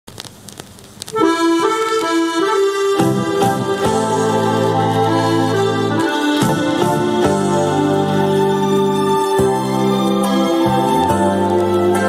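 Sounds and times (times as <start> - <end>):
stylus clicks and crackles: 0.1 - 2.5
song from vinyl record: 0.1 - 12.0.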